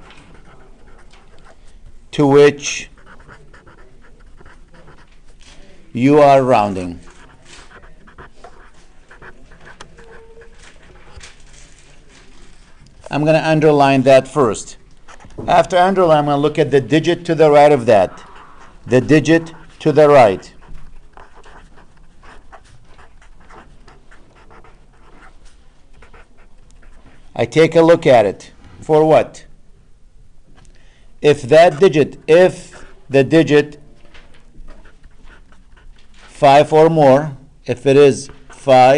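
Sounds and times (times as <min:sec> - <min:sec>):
marker writing on paper: 0:00.0 - 0:13.5, 0:14.2 - 0:27.4, 0:34.4 - 0:36.7.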